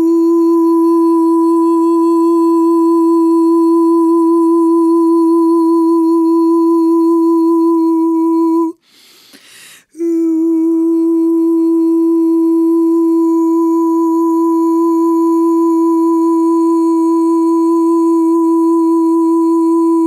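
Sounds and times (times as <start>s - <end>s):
woman humming a steady note: 0.0s - 8.9s, 9.9s - 20.0s
woman breathing: 8.8s - 10.0s.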